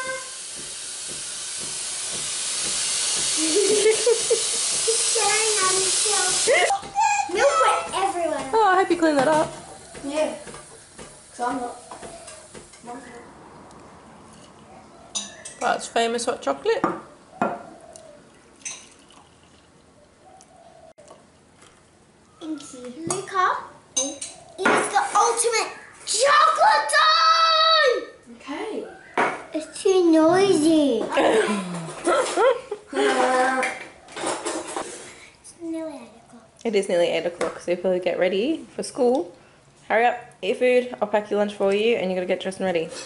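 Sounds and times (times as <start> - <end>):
child's voice: 0.0 - 0.4, 5.1 - 8.6, 22.4 - 28.2, 29.6 - 31.2, 35.5 - 36.5
steam wand hissing: 0.0 - 6.7
faint kitchen knocks: 0.5 - 3.4.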